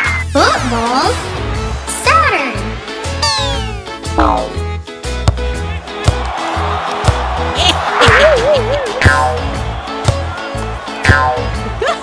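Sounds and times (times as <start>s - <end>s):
cartoon downward pitch slide: 3.2s - 4.6s.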